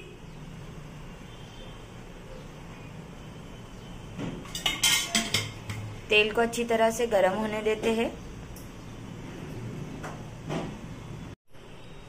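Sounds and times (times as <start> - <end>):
metallic clinks of kitchenware: 4.4 - 5.8.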